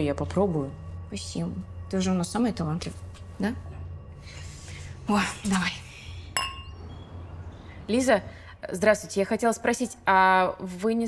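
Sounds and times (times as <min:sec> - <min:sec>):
wine glasses clinking: 0:06.4 - 0:07.1.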